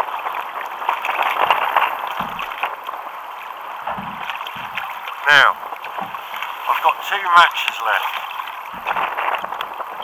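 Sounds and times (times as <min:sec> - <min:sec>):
water lapping against kayak hull: 0:00.0 - 0:10.0
dull knocks: 0:02.1 - 0:02.7, 0:03.8 - 0:06.5, 0:08.6 - 0:09.7.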